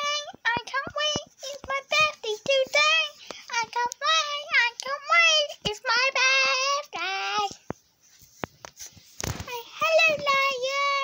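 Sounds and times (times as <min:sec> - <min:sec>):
child singing: 0:00.0 - 0:07.7, 0:09.5 - 0:11.0.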